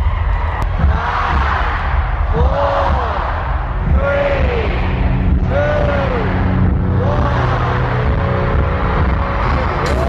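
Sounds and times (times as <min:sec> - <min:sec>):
live concert music with heavy bass: 0:00.0 - 0:10.0.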